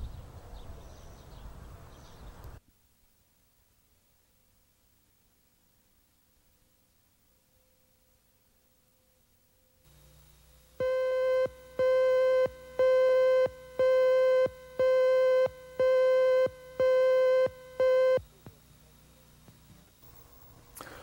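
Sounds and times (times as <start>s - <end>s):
faint low tape hum: 0.0s - 21.0s
buzzy slate beeps: 10.8s - 18.2s.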